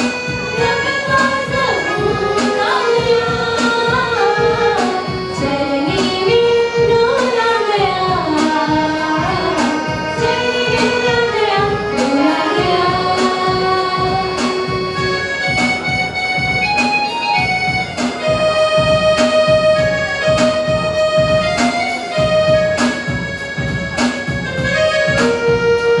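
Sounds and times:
electronic keyboard with beat: 0.0s - 26.0s.

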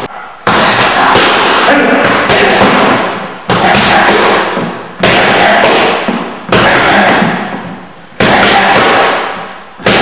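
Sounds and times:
boxing gloves striking focus mitts: 0.5s - 10.0s.

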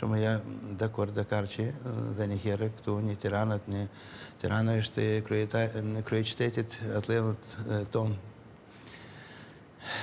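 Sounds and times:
man speaking: 0.0s - 8.3s
faint breath: 3.9s - 4.4s, 8.7s - 10.0s.

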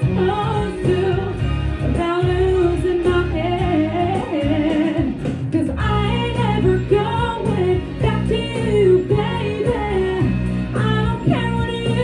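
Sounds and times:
backing track with bass line: 0.0s - 12.0s
woman singing into microphone: 0.0s - 12.0s.

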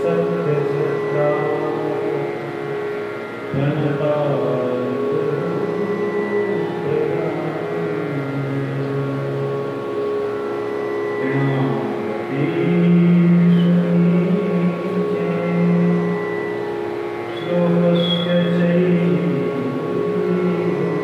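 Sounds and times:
man chanting: 0.0s - 9.9s, 11.2s - 16.6s, 17.3s - 21.0s
instrumental drone: 0.0s - 21.0s.

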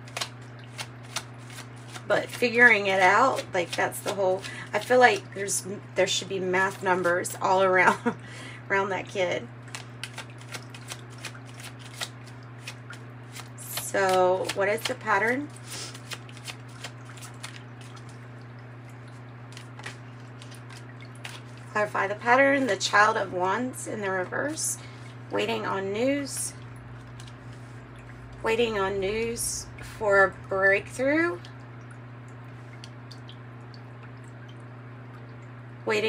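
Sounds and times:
cards snapping: 0.0s - 2.1s, 9.7s - 15.0s, 15.7s - 18.0s, 19.5s - 21.4s
cards being shuffled: 0.0s - 4.9s, 9.7s - 18.2s, 19.5s - 21.6s
low hum: 10.7s - 36.0s.

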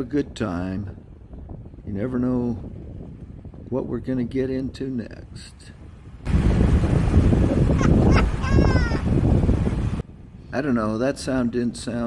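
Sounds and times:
wind on microphone: 0.0s - 12.0s
man laughing: 7.7s - 9.1s.

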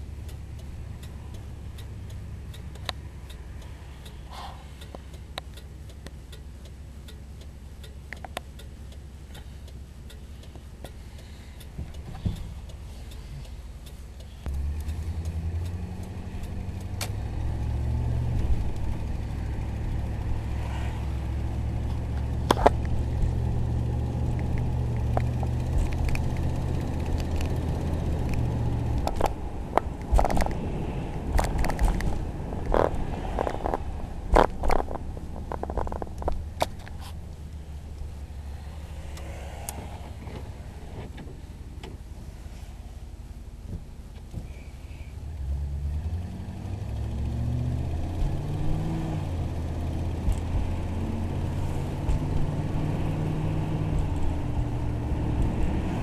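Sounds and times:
car engine accelerating: 0.0s - 44.4s, 45.2s - 56.0s
sharp clicks: 0.2s - 4.2s, 24.2s - 38.1s.

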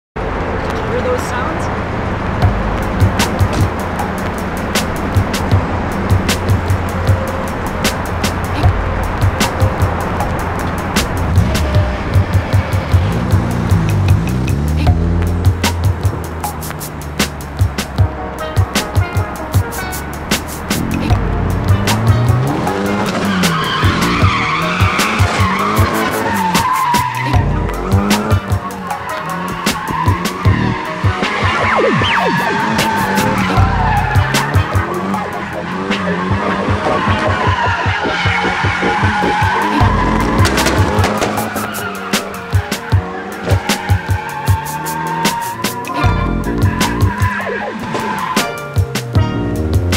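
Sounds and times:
car engine revving: 0.2s - 49.9s
background music with a beat: 2.4s - 49.9s
tyres squealing: 19.8s - 48.8s.

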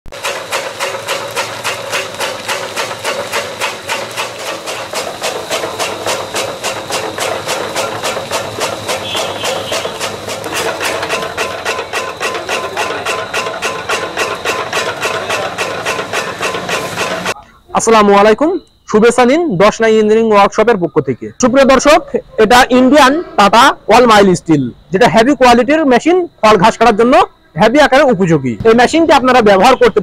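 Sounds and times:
chaff cutter chopping strikes: 0.1s - 17.4s
machine humming: 0.1s - 17.4s.

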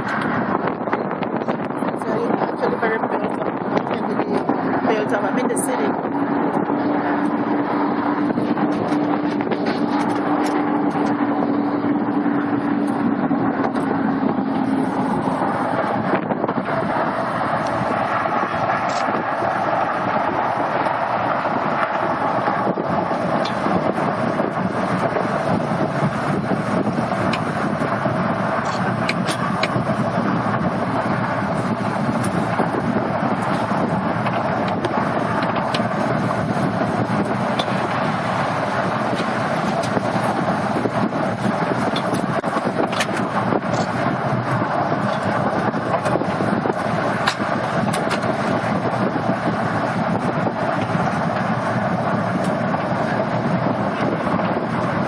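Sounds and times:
bus road noise: 0.0s - 55.0s
traffic: 0.0s - 55.0s
wind rushing over microphone: 0.0s - 55.0s.

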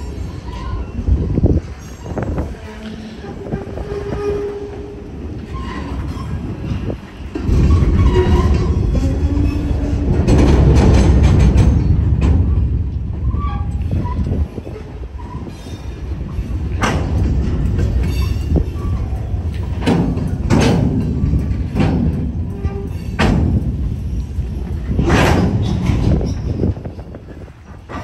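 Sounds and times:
freight train rumble: 0.0s - 28.0s
wheels clacking over rail joints: 0.0s - 28.0s.

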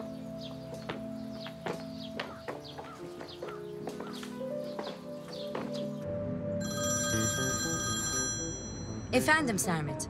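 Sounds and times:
background music: 0.0s - 10.0s
mobile phone ringing: 6.6s - 9.2s.

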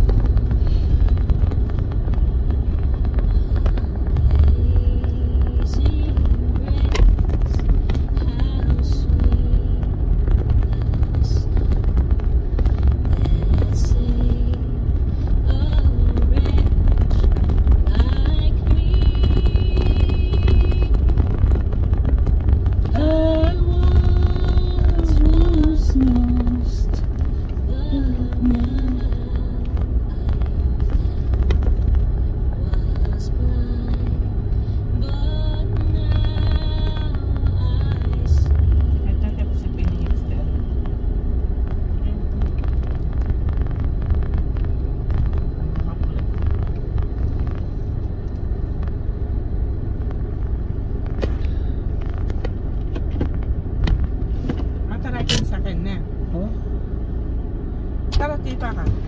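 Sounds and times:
car cabin rumble: 0.0s - 59.0s
indistinct voices: 35.0s - 40.9s.

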